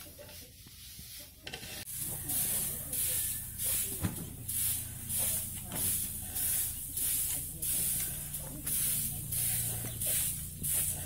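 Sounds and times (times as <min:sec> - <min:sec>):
brooms and rake swishing through grain: 0:00.0 - 0:11.0.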